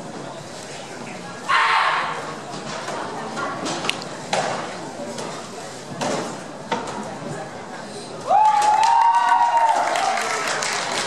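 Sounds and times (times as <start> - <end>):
murmur of voices: 0.0 - 11.0.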